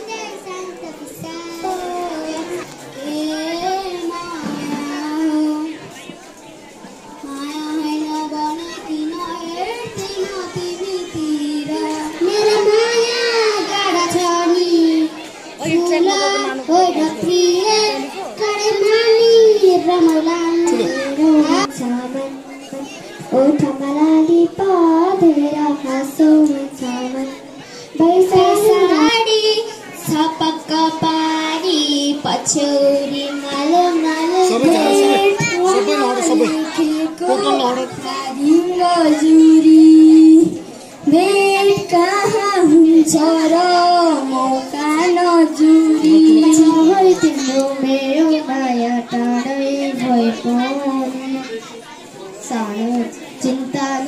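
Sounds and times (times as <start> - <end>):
child singing into a microphone: 0.0 - 6.3, 7.0 - 54.0.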